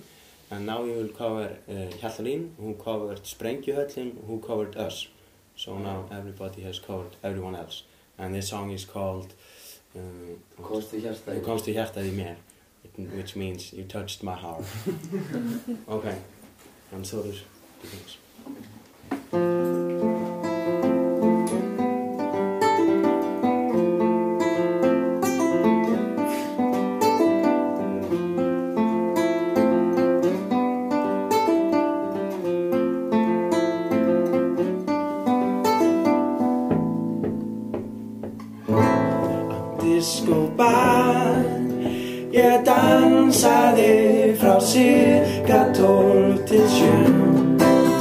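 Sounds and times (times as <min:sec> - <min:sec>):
classical guitar picking: 0:19.3 - 0:48.0.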